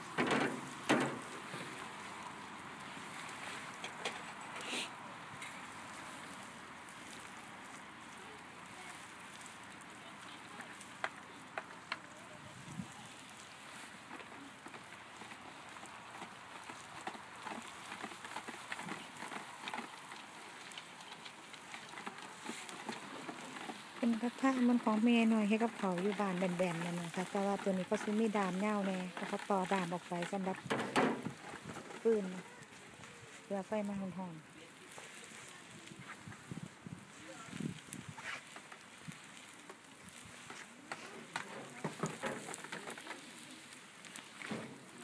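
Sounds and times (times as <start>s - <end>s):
wood fire hissing: 0.0s - 45.0s.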